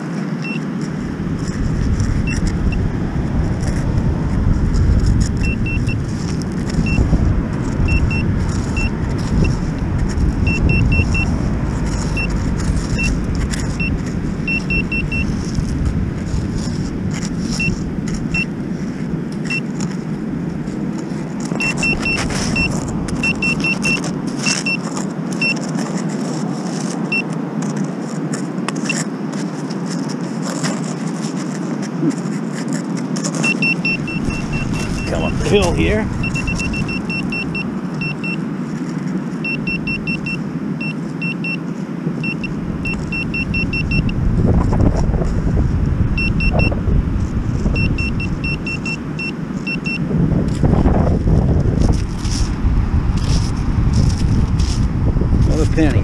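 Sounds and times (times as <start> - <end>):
stones clicking and scraping: 0.2 - 37.0, 50.4 - 56.0
steady low rumble: 0.4 - 30.3, 31.0 - 56.0
metal detector short high beeps: 5.4 - 6.0, 6.8 - 7.0, 7.9 - 8.2, 10.5 - 11.3, 13.0 - 13.2, 14.5 - 15.3, 21.6 - 24.8, 33.4 - 38.4, 39.4 - 41.6, 42.2 - 44.1, 46.2 - 46.7, 47.8 - 50.0.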